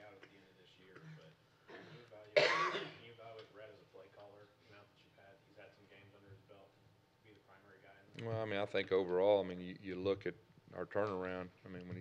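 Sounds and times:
sharp cough: 0.2 - 3.1.

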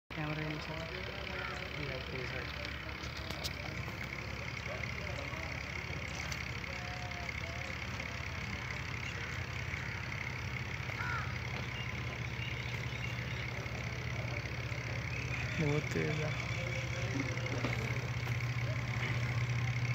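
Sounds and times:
low engine hum: 0.1 - 19.9
people talking faintly: 0.4 - 9.6.

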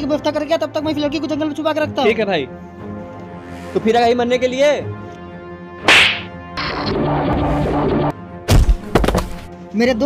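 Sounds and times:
whip crack: 5.8 - 6.3.

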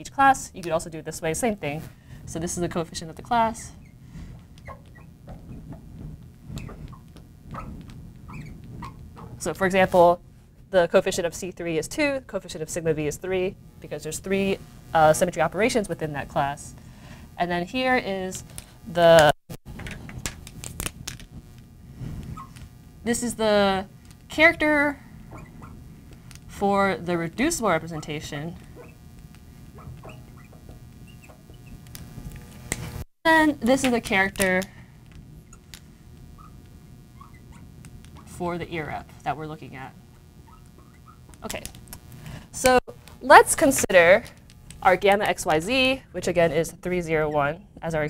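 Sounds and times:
marker squeaking on glass: 3.7 - 5.8, 6.5 - 9.4, 22.3 - 22.6, 25.3 - 25.8, 27.9 - 29.0, 29.7 - 31.8, 36.4 - 37.7, 40.4 - 41.3.

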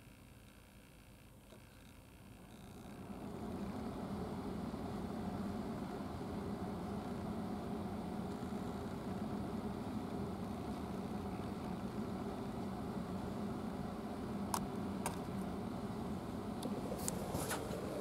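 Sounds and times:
steady mechanical hum: 0.0 - 18.0.

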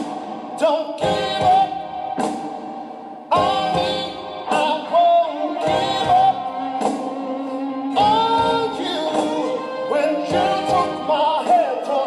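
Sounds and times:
man singing ballad: 0.0 - 2.0, 3.3 - 7.0, 7.8 - 12.0
band accompaniment: 0.0 - 12.0.

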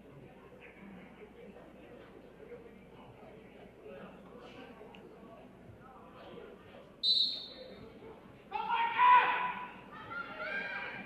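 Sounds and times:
people shouting in a gym: 8.5 - 11.0.

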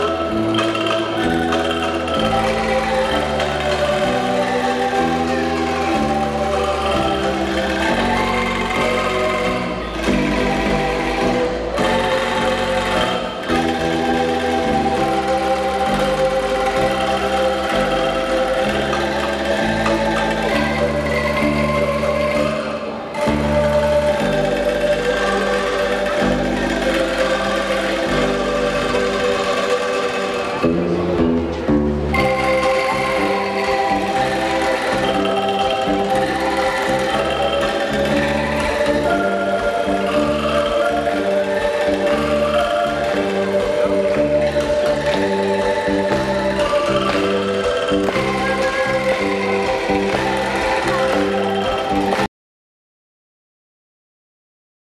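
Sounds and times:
angklung orchestra playing: 0.0 - 52.3.

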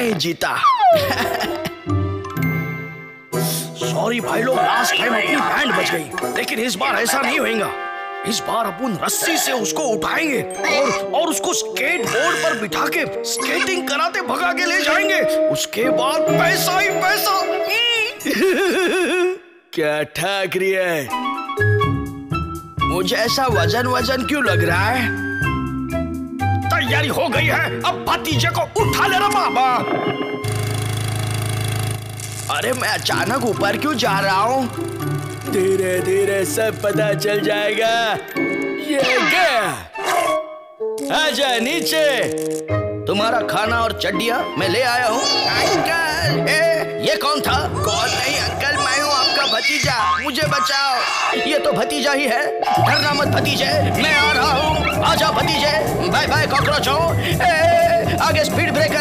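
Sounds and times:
cartoon fan motor buzzing: 30.5 - 37.2.

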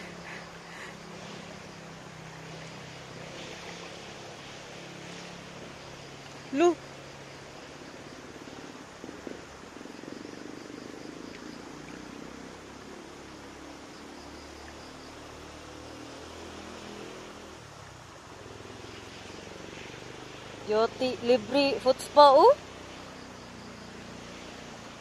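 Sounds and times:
low wavering hum: 0.0 - 15.6
creek water hissing: 0.0 - 25.0.

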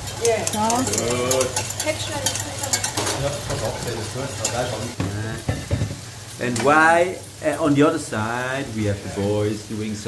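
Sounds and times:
spatula clicking against pan: 0.0 - 3.1
vegetables sizzling in frying pan: 0.0 - 10.0.

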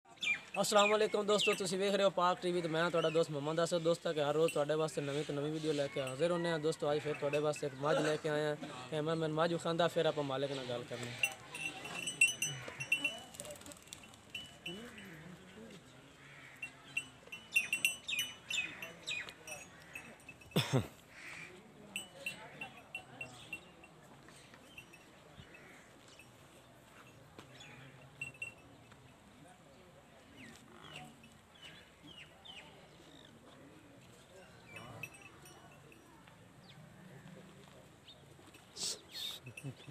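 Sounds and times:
faint voices: 10.1 - 39.9
high bell-like pings: 11.2 - 15.2, 16.6 - 20.6.

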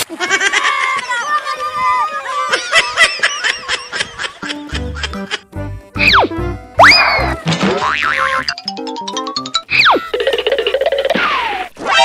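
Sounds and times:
cartoon falling whistle: 6.0 - 7.4, 9.7 - 10.1.

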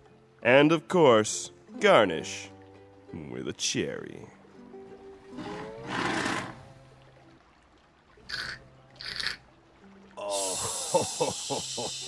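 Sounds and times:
faint background music: 0.0 - 12.0
slurping through a straw: 5.3 - 6.6, 8.3 - 9.4.

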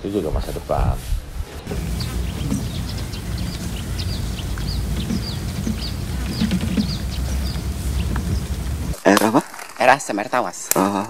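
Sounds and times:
birds chirping: 0.0 - 11.0
steady low rumble: 0.7 - 9.0.

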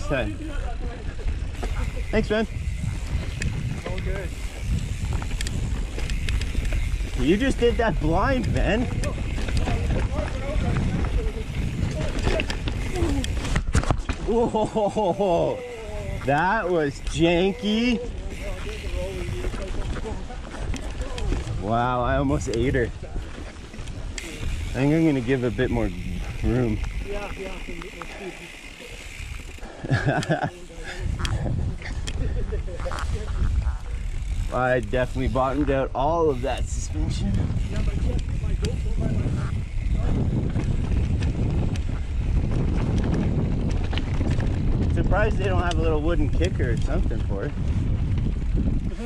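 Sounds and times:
wind on microphone: 0.0 - 27.7, 29.1 - 49.0
bike rattling over bumps: 0.0 - 49.0.

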